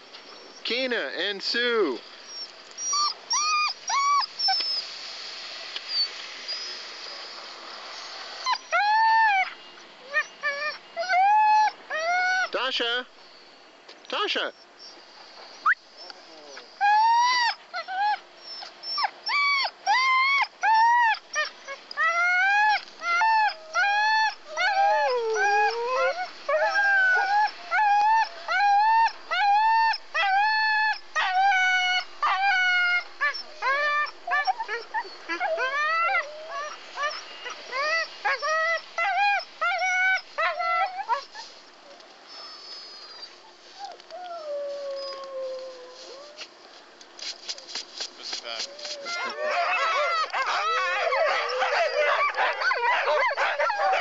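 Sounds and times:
sled dogs whining: 2.2 - 4.8, 8.0 - 12.5, 15.6 - 41.5, 48.6 - 54.0.

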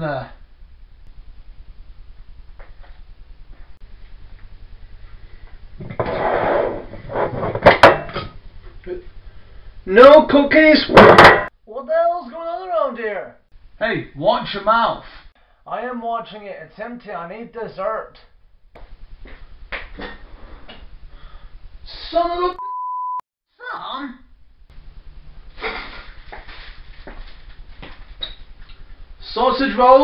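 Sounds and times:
jar lid scraping: 5.9 - 7.8.

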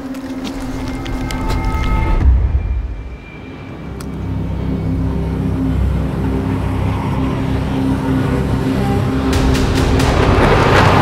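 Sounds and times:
low droning tones: 0.3 - 11.0.

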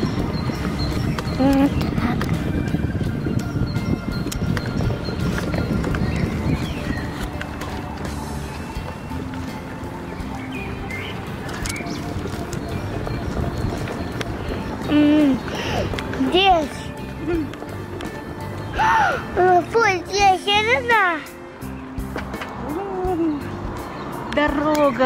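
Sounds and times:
small wheels rolling on asphalt: 0.0 - 18.7
music playing: 0.0 - 25.0
scattered clicks: 11.4 - 12.7.

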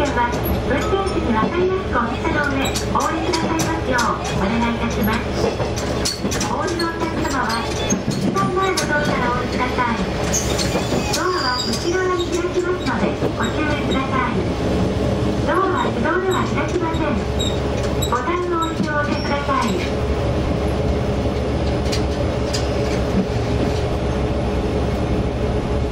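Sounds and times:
rail-joint clicks: 0.0 - 20.0, 21.3 - 24.0
railcar engine and wheels rumbling: 0.0 - 25.9.

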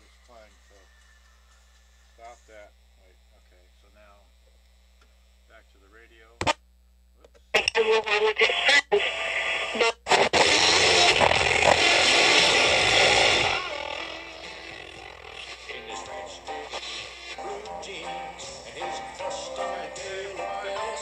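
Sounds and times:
boombox playing music: 9.6 - 21.0.

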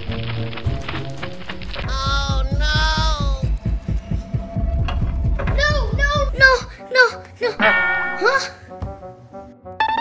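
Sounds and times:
rapid low heartbeat throbbing: 1.9 - 6.7.

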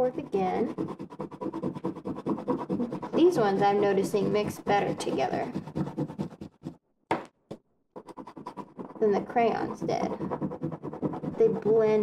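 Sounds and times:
pastel scribbling on paper: 0.0 - 6.8, 8.0 - 12.0.

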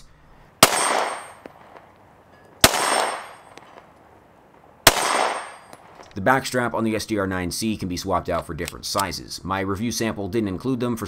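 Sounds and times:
pistol shots: 0.6 - 2.0, 2.6 - 6.1.

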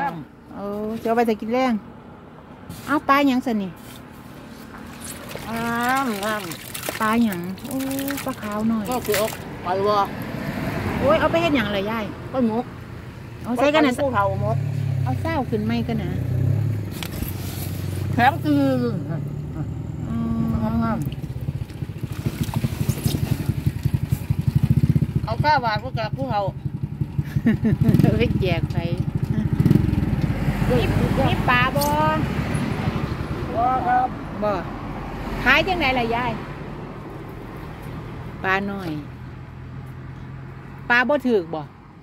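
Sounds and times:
person speaking: 5.2 - 10.2
small engine idling: 20.1 - 30.9.

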